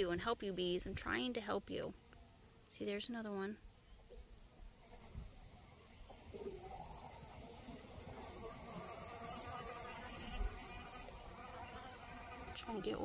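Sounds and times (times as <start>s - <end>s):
bees buzzing: 6.1s - 13.0s.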